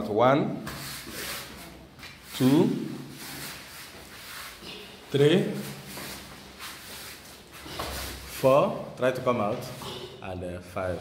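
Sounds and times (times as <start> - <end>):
wrestlers scuffing on foam mats: 0.7 - 8.5.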